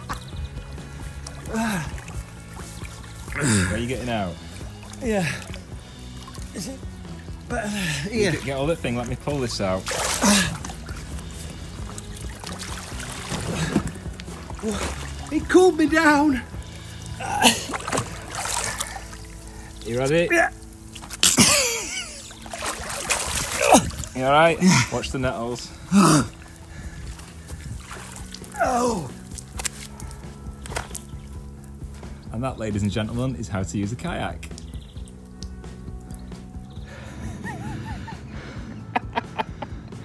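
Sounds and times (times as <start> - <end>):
wet feet slapping on stone: 0.0 - 3.7, 4.4 - 15.3, 17.2 - 19.3, 20.6 - 24.2, 27.1 - 32.2, 34.4 - 36.6
river water sloshing: 0.0 - 32.4
background music: 0.0 - 40.0
low splashing: 0.0 - 40.0.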